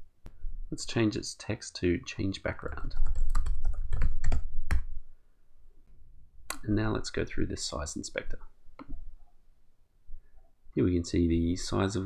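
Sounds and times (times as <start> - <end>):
computer keyboard typing: 2.7 - 4.9.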